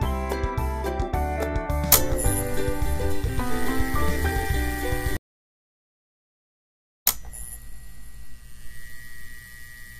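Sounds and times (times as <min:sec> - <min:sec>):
sharp click: 0:01.8 - 0:02.4, 0:07.1 - 0:07.4
electrical hum with high whine: 0:07.1 - 0:09.9.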